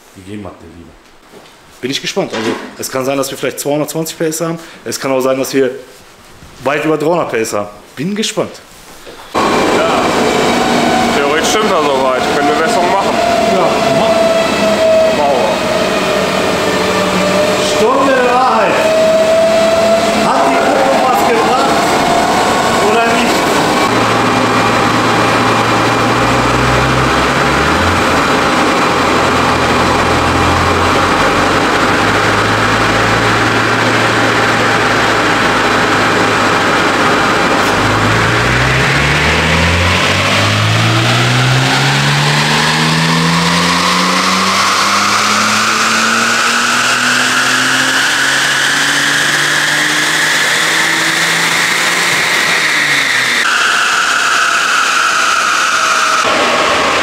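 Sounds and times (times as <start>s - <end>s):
car engine revving: 9.3s - 57.0s
high supercharger whine: 9.3s - 57.0s.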